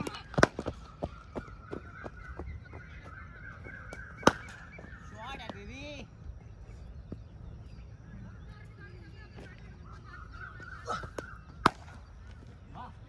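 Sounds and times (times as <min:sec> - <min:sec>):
cricket bat striking ball: 0:00.3 - 0:00.8, 0:03.9 - 0:05.0, 0:11.2 - 0:12.0.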